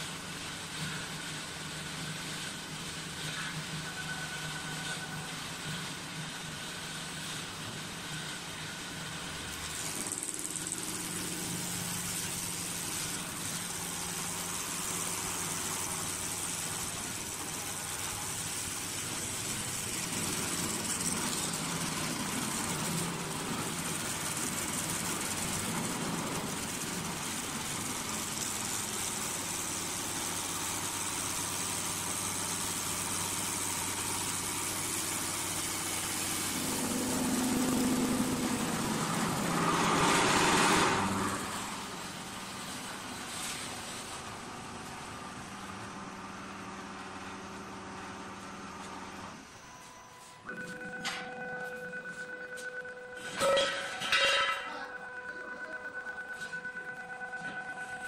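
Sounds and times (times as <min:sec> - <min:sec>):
wood lathe motors humming: 0:02.9 - 0:53.4.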